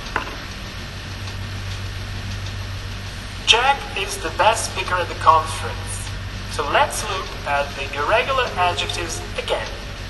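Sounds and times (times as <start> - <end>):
background hiss: 0.0 - 10.0
low even hum: 0.0 - 10.0.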